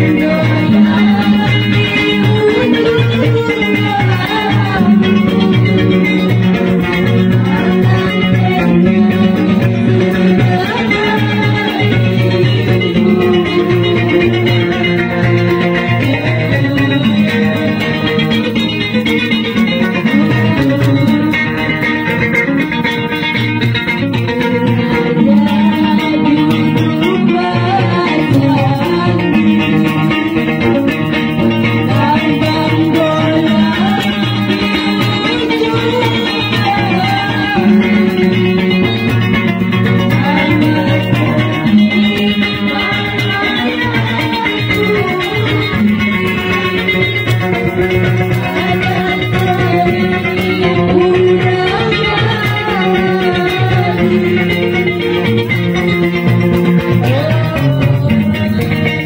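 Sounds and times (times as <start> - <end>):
person singing: 0.0 - 59.0
plucked lutes playing: 0.0 - 59.0.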